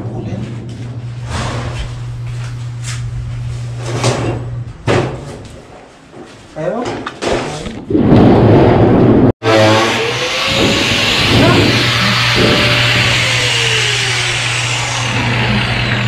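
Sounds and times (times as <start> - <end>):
angle grinder grinding metal: 9.4 - 16.0.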